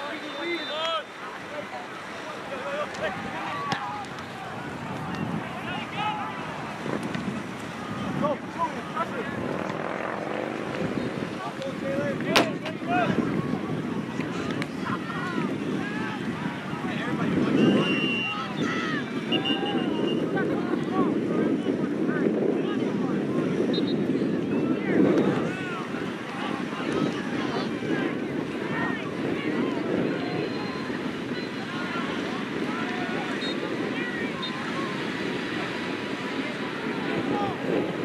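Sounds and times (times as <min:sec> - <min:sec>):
wind rumbling across microphone: 0:01.3 - 0:38.0
distant shouts and calls: 0:14.3 - 0:20.6, 0:23.5 - 0:37.7.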